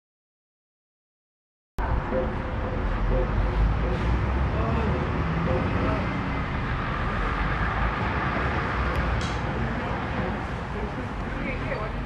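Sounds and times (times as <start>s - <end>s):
steady low rumble: 1.8s - 12.0s
faint indistinct voices: 9.4s - 12.0s.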